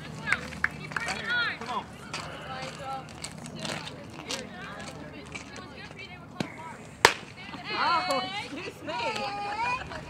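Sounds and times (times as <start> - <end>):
softball hitting bat or glove: 6.4 - 7.3.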